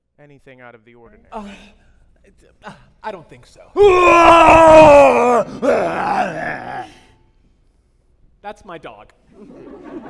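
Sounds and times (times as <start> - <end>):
person groaning howl: 3.8 - 7.1.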